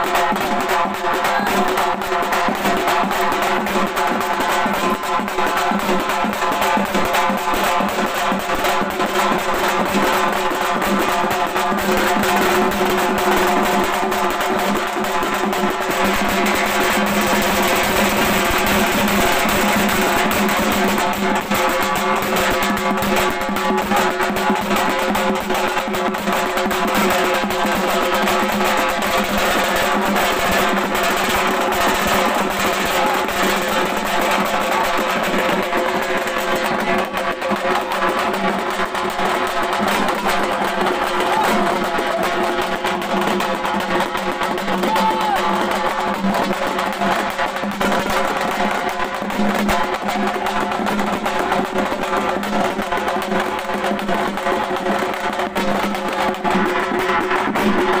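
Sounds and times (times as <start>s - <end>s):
drum ensemble drumming with sticks: 0.0s - 58.0s.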